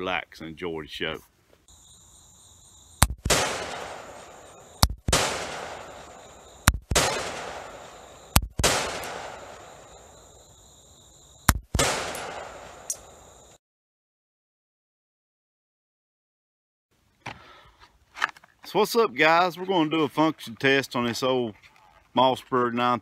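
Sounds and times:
high insect drone: 1.7 - 6.8, 7.5 - 11.5, 12.3 - 13.6
gunshots with echoing decay: 3.0 - 10.1, 11.5 - 13.2.

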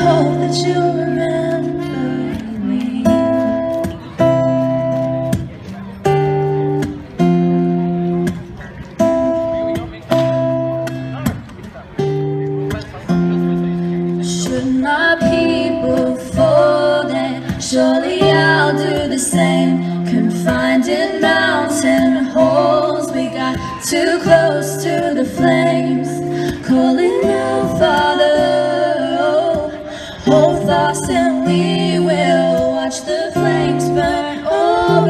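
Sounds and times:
acoustic guitar strumming: 0.0 - 35.0
person singing: 14.4 - 35.0.

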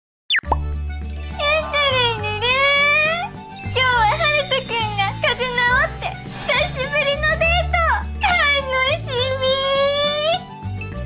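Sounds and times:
cartoon plop sound effect: 0.3 - 0.7
children's music jingle: 0.5 - 10.4
high sliding voice: 1.4 - 3.0, 3.8 - 7.7.

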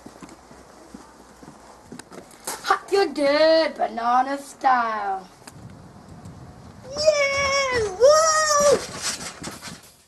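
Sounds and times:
boy yelling high-pitched: 6.8 - 9.0
scuffling clatter: 7.8 - 10.0.

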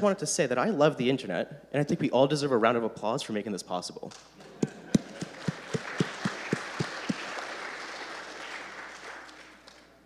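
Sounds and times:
audience applauding: 4.5 - 10.0.

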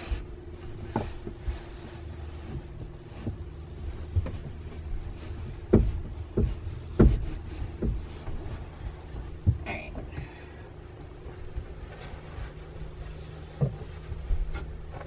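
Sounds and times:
dull thumps and knocks: 0.0 - 10.4, 11.4 - 15.0
steady low hum: 0.0 - 15.0.

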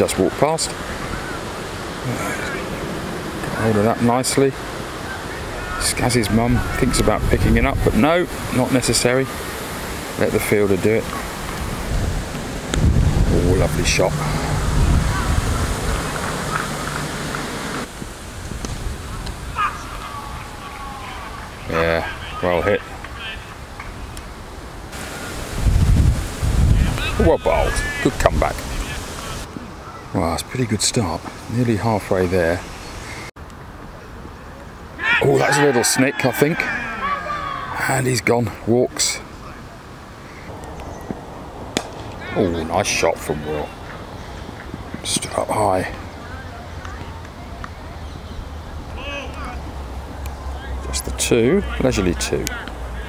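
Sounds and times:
faint distant voices: 0.0 - 17.1, 18.9 - 25.4, 26.7 - 53.0
wind buffeting microphone: 0.7 - 29.8
cricket bat striking ball: 41.1 - 42.1.

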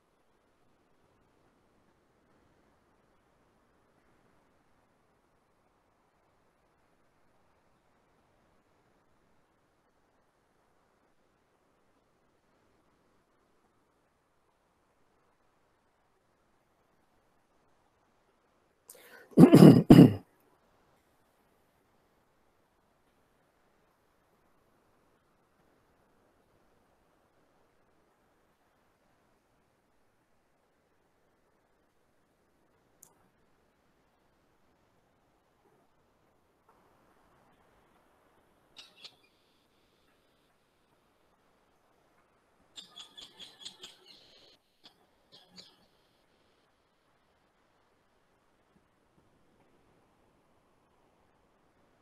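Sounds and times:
man clearing his throat: 19.4 - 20.2
high squeaky chirps: 42.8 - 45.9.

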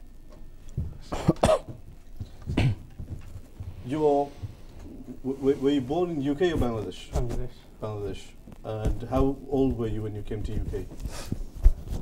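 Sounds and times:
person coughing: 1.1 - 1.8, 2.5 - 2.9.

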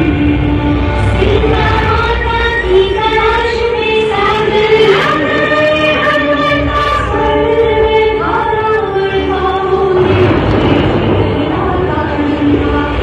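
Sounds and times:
choir singing held notes: 4.0 - 13.0.

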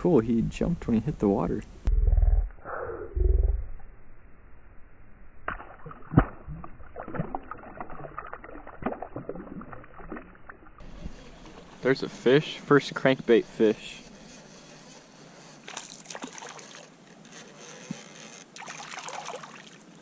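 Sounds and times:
low rumble on microphone: 0.0 - 8.0
water splashing: 5.5 - 13.7, 15.6 - 17.0, 18.6 - 20.0.

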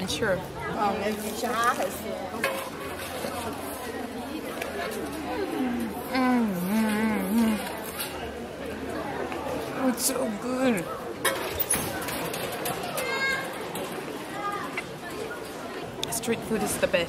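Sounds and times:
background chatter: 0.0 - 17.0.

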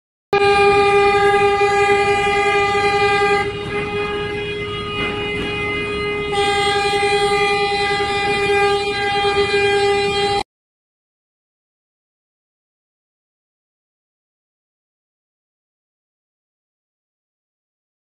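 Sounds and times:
low rumbling noise: 0.4 - 10.4
ship's horn blast: 0.4 - 10.5.

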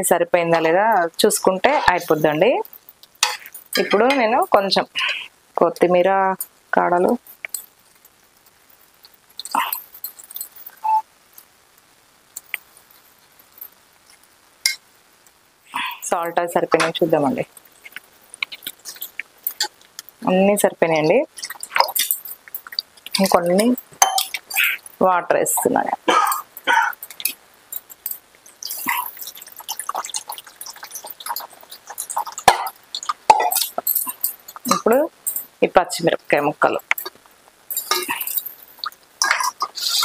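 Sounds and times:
person speaking: 0.0 - 2.7, 3.8 - 7.2, 15.7 - 17.5, 20.2 - 22.0, 23.1 - 27.0, 33.4 - 37.0
faint hiss: 0.0 - 40.0
curry bubbling in a pan: 0.6 - 35.6, 36.2 - 40.0
metal spatula clinking on pot: 3.2 - 4.3, 21.0 - 24.9, 26.3 - 35.5, 37.7 - 39.7.

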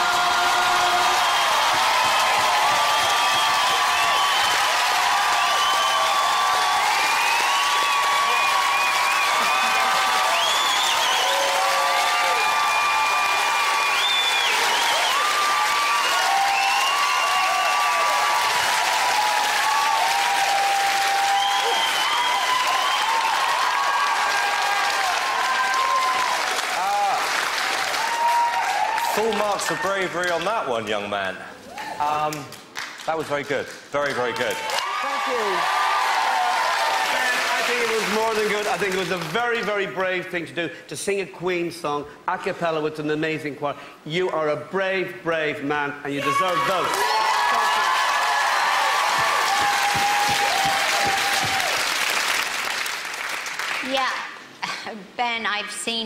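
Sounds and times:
audience applauding and cheering: 0.0 - 30.8, 31.6 - 40.2, 46.1 - 54.6.

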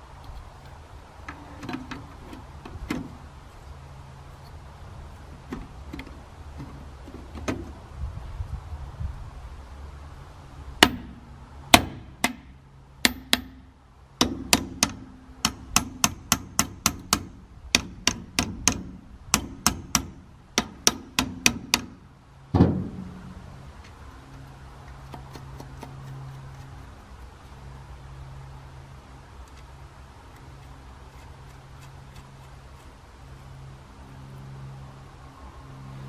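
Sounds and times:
dull metal thump: 14.2 - 23.6.

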